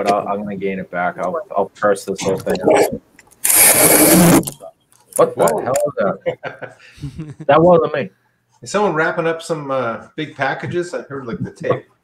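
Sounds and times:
rasping tearing noise: 2.5 - 4.6.

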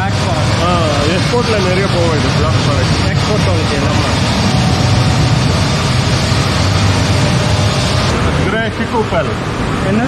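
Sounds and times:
polishing machinery running: 0.0 - 9.0.

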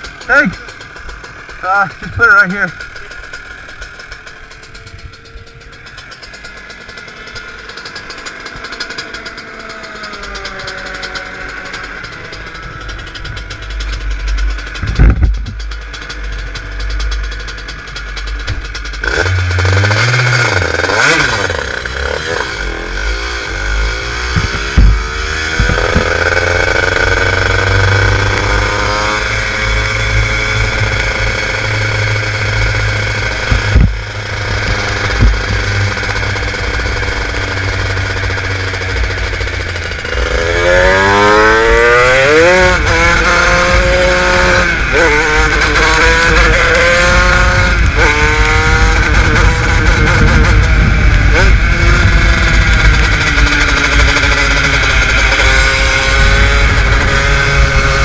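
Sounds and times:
kart engine revving: 0.0 - 58.0.

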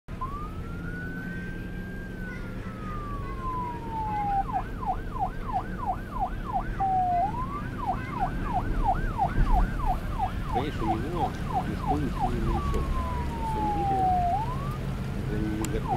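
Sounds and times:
electronic siren wailing and yelping: 0.2 - 14.8.

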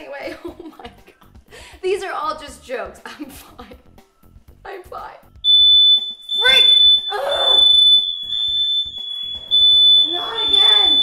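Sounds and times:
smoke alarm tone: 5.4 - 11.0.

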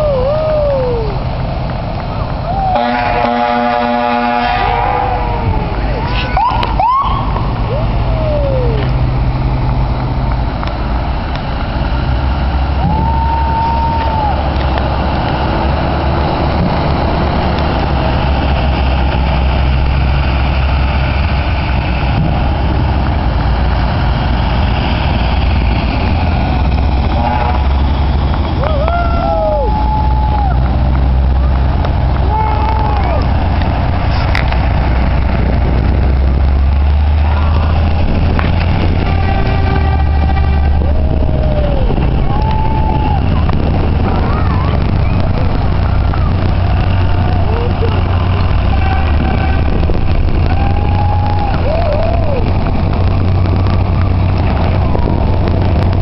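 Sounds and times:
heavy truck engines: 0.0 - 56.0
rising-and-falling siren tones: 4.6 - 8.9.

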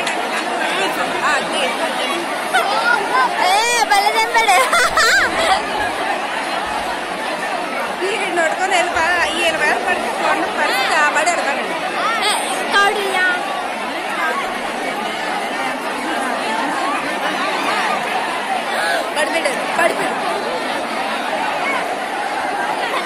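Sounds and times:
crowd talking and shouting: 0.0 - 23.0.

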